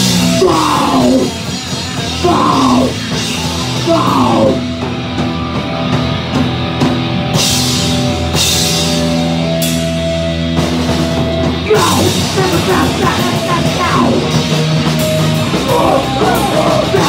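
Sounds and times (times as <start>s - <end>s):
distorted electric guitars: 0.0s - 17.0s
drums: 0.0s - 17.0s.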